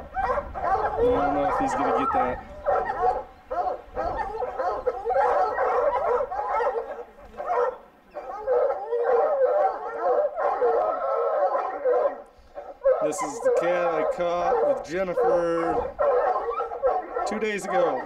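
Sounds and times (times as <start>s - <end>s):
hounds baying: 0.0s - 18.0s.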